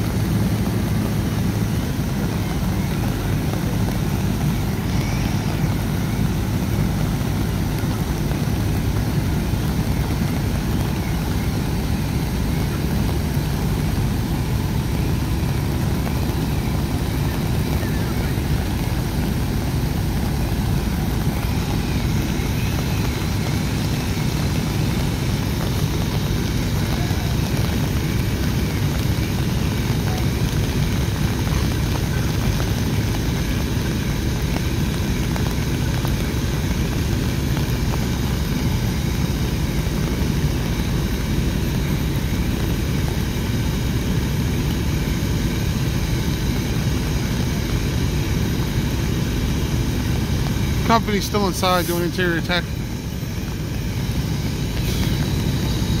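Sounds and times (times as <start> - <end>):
fire truck diesel engine drone: 0.0 - 56.0
heavy rain falling: 0.0 - 56.0.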